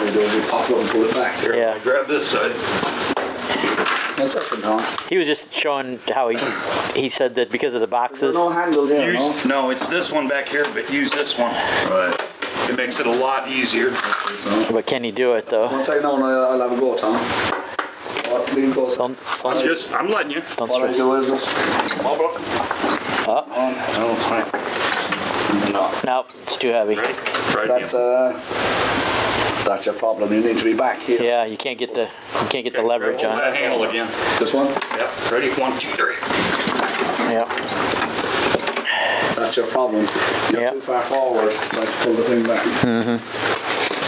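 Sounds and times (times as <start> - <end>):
rustling and handling noise: 0.0 - 15.7, 17.0 - 44.0
men talking: 0.0 - 28.5, 29.5 - 43.2
man speaking: 3.5 - 17.4, 29.6 - 36.3, 39.2 - 43.3
rustling handling noise: 23.9 - 27.6, 33.7 - 44.0.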